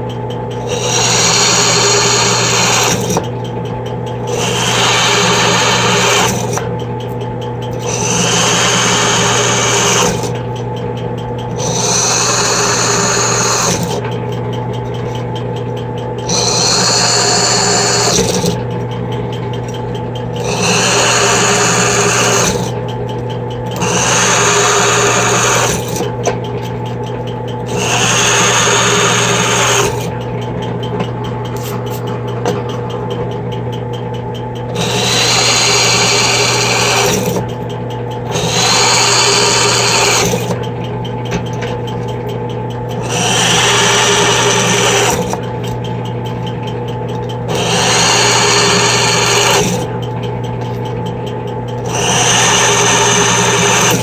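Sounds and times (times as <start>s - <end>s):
drill press motor hum: 0.0s - 54.0s
drill bit cutting aluminium: 0.6s - 3.3s, 4.3s - 6.6s, 7.8s - 10.4s, 11.5s - 14.0s, 16.2s - 18.6s, 20.4s - 22.8s, 23.7s - 26.1s, 27.7s - 30.2s, 34.8s - 37.4s, 38.3s - 40.6s, 43.0s - 45.4s, 47.5s - 49.9s, 51.8s - 54.0s.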